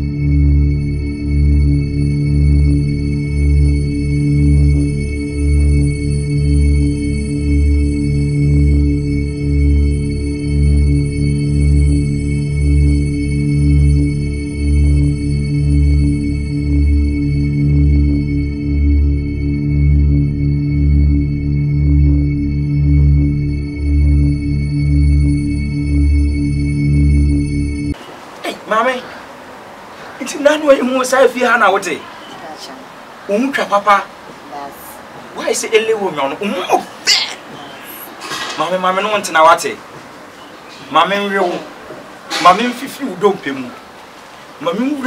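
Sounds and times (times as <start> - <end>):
pulsing bass note: 0.0 - 28.0.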